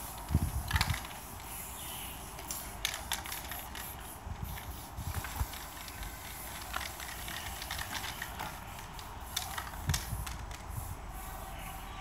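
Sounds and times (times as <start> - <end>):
spray paint can hissing: 0.0 - 11.8.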